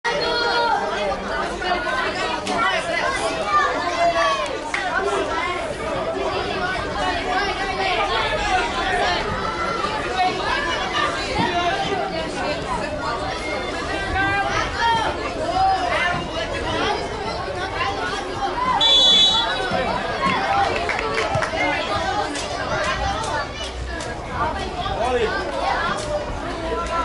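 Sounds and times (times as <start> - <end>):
babble of many voices: 0.0 - 27.0.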